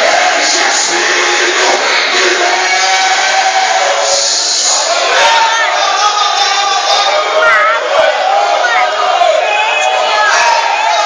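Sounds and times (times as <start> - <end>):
church worship music: 0.0 - 11.0
congregation voices: 0.0 - 11.0.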